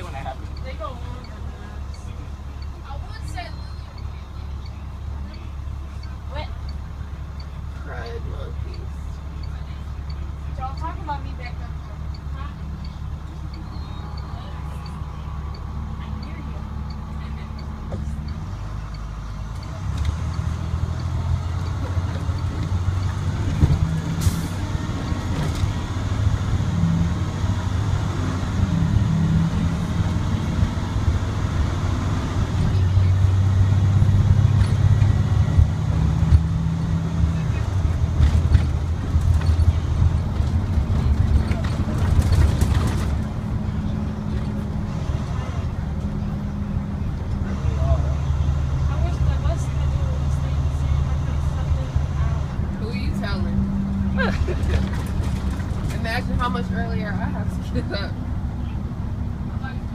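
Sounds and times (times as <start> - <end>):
diesel bus engine: 0.0 - 59.9.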